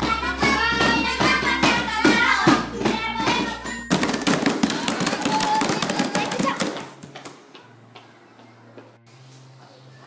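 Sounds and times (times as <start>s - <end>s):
hands slapping a tabletop: 3.9s - 7.4s
children's voices: 4.7s - 7.0s.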